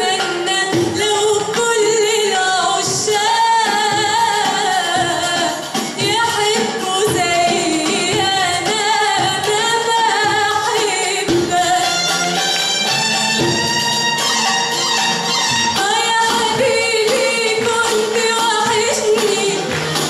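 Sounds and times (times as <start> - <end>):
woman singing into a microphone: 0.0 - 12.4, 15.7 - 20.0.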